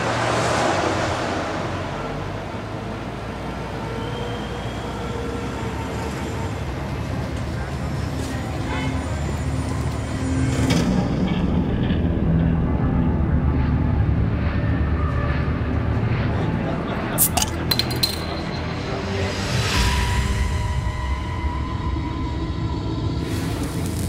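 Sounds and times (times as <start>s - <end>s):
sharp clinks: 17.2s - 18.8s.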